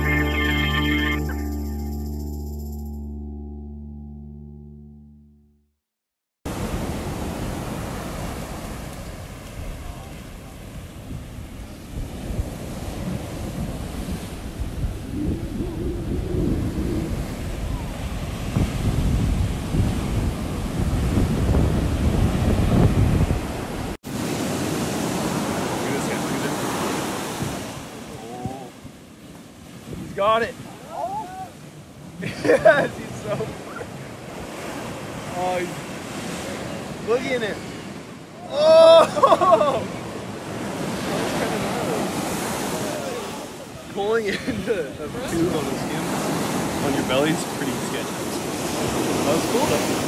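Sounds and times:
wind buffeting microphone: 0:06.5 - 0:24.0, 0:27.2 - 0:32.2, 0:48.2 - 0:50.0
waves breaking on sand: 0:06.5 - 0:50.0.

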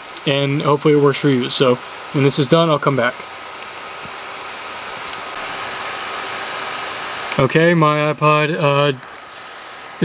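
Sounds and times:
faint thin whine: 0:00.0 - 0:10.0
room noise hiss: 0:00.0 - 0:10.0.

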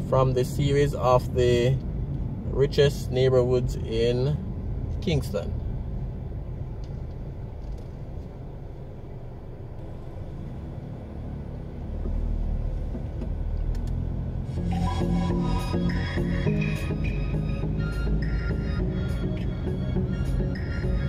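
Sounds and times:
car engine and road rumble: 0:00.0 - 0:21.0
background music: 0:14.4 - 0:21.0.

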